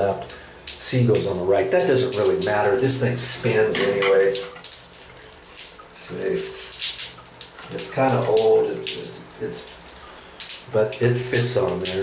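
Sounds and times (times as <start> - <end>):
water trickling and splashing: 0.0 - 12.0.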